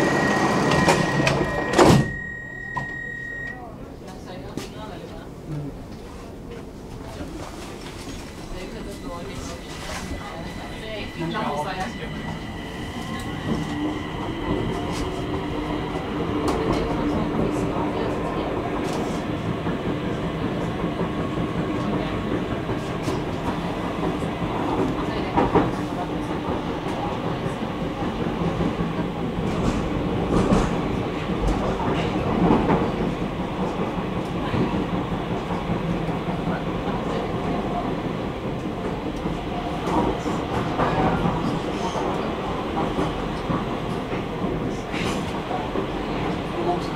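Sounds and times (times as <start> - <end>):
train wheels and motors rumbling: 3.9 - 46.9.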